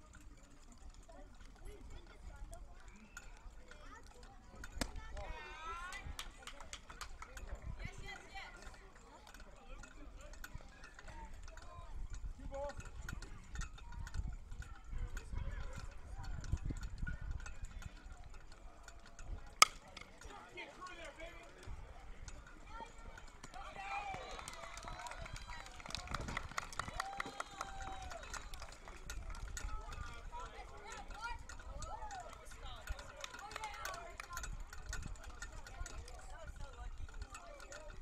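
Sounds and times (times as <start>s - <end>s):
spectators' voices: 1.0s - 13.8s, 14.9s - 38.0s
bat cracking ball: 19.6s - 20.1s
crowd cheering and shouting: 23.5s - 26.0s, 26.8s - 28.6s.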